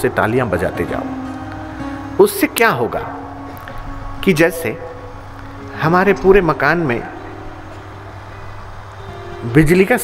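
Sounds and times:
low electrical hum: 0.0s - 10.0s
public-address background noise: 0.0s - 10.0s.

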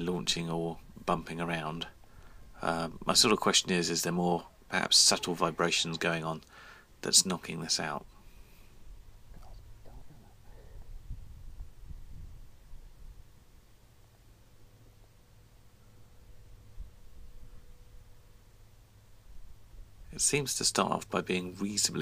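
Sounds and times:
soft faint noises: 0.0s - 22.0s.

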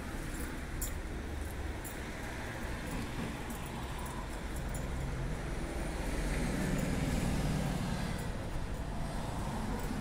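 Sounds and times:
traffic noise: 0.0s - 10.0s
vehicle engine rumble: 0.0s - 10.0s.

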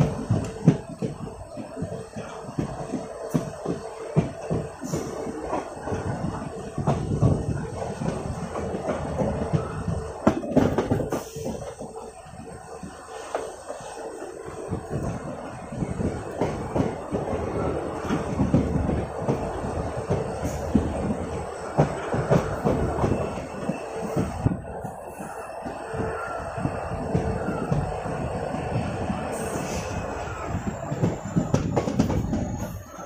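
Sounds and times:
clattering knocks from train: 0.0s - 24.6s, 25.2s - 33.0s
train wheels rumbling on track: 0.0s - 33.0s.

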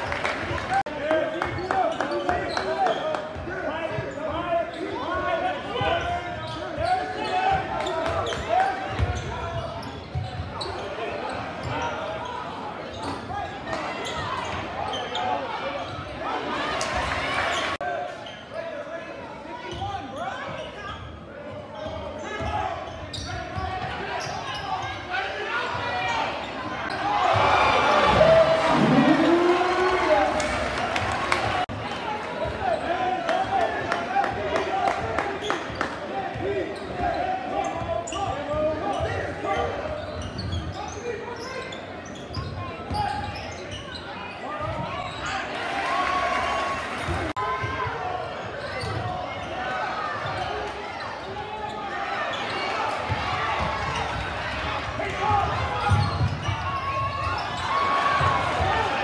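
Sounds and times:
crowd chattering: 0.0s - 59.0s.

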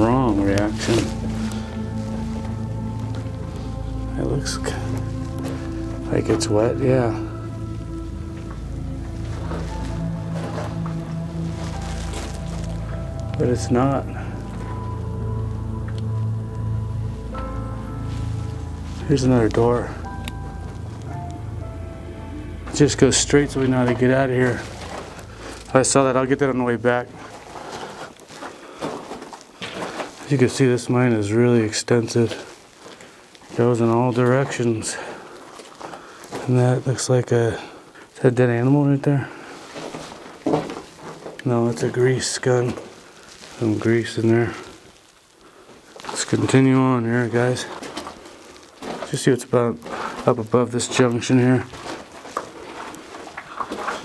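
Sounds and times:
footsteps crunching on dirt and rock: 0.0s - 54.0s
low even hiss: 29.4s - 51.9s.

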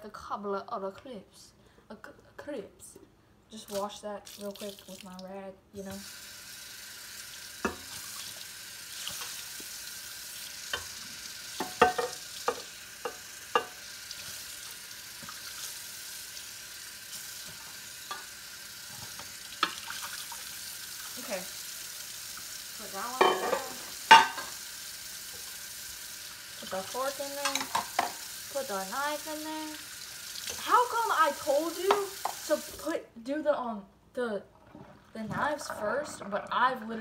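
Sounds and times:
dishes and cutlery clinking: 11.6s - 13.8s, 23.2s - 24.5s.

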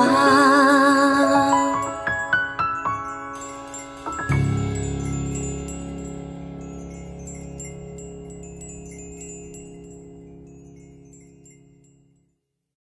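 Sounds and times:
held chord of a ballad: 0.0s - 11.0s
chimes tinkling: 0.0s - 12.4s.

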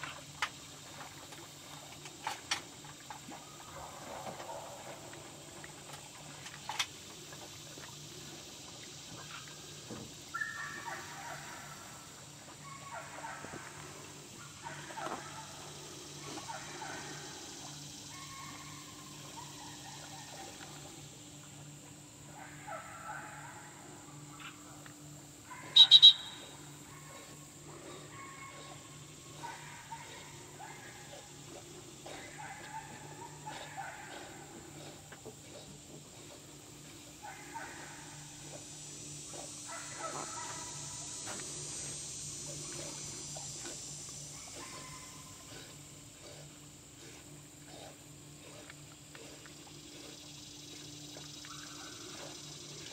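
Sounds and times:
high-pitched whistle toots: 25.8s - 26.4s.

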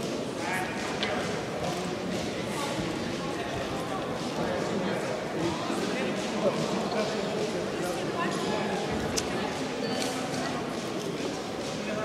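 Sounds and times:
echoing voices and chatter: 0.0s - 12.0s.

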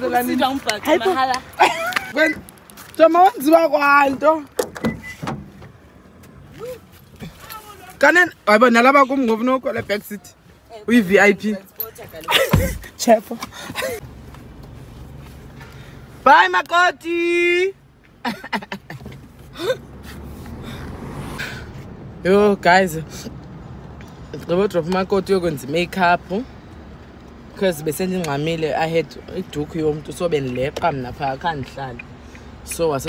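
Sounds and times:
truck door unlatching and opening: 4.6s - 5.8s.

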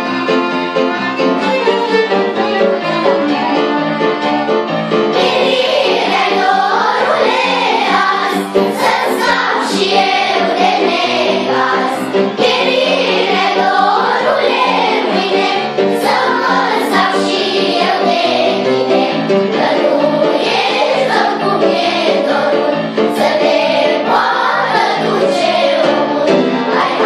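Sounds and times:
children's choir singing: 2.3s - 27.0s.

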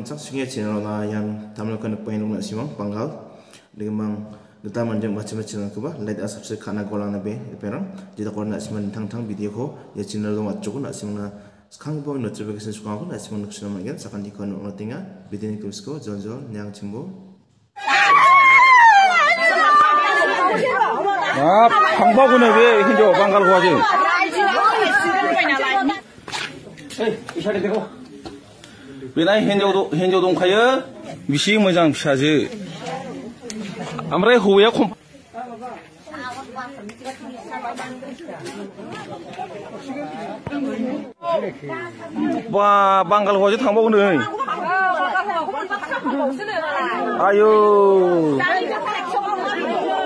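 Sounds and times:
woman wailing: 17.8s - 23.8s
people talking: 17.8s - 50.0s.

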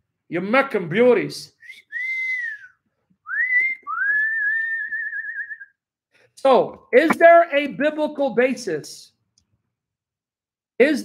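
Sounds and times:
man whistling: 1.6s - 5.8s.

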